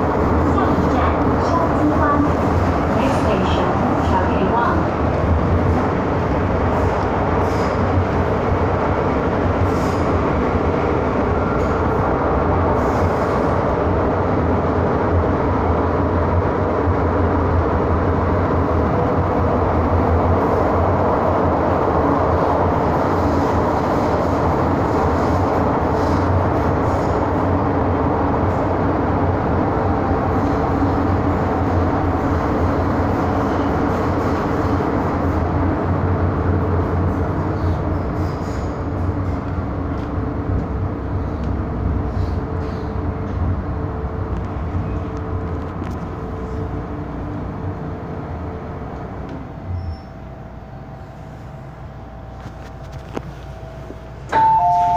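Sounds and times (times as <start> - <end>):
train wheels rumbling on rail: 0.0 - 54.9.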